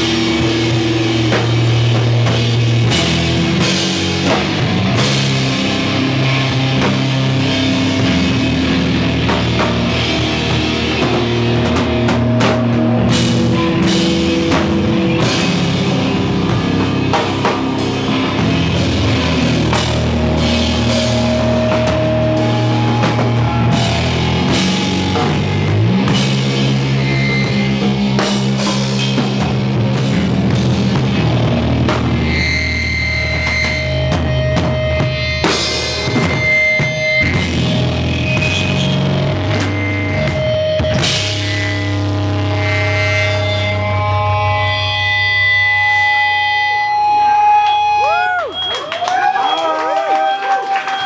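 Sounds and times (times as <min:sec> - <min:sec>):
bass and drum pulse: 0:00.0 - 0:48.7
rock band playing live: 0:00.0 - 0:51.0.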